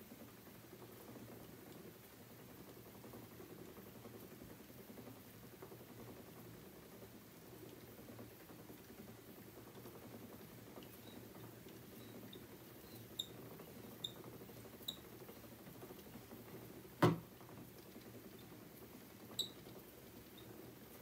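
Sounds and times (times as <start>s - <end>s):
spinning wheel whirring: 2.5s - 16.9s.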